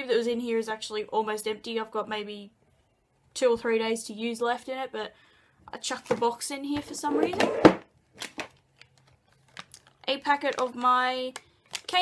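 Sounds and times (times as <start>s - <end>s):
packaging clicks and rustles: 8.1s - 12.0s.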